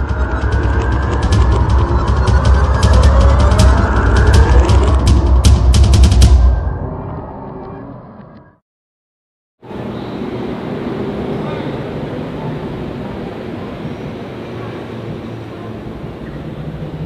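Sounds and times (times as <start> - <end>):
road traffic rumble: 9.6 - 17.0.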